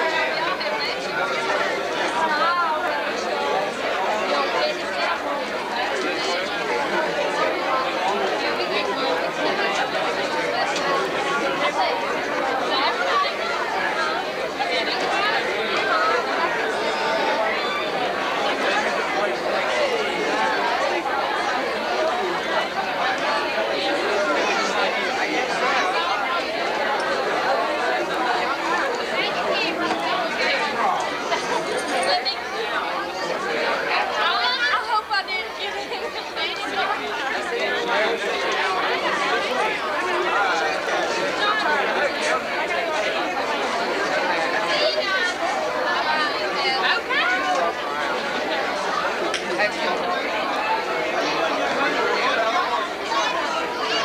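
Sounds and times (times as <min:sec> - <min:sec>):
many people chatting: 0:00.0 - 0:54.0.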